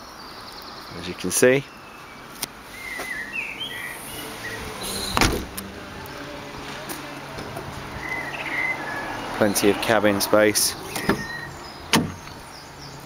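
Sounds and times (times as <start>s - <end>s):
high bird chirps: 1.6s - 5.2s, 7.9s - 9.8s, 10.7s - 13.0s
car tailgate thump: 5.1s - 5.6s, 10.9s - 12.2s.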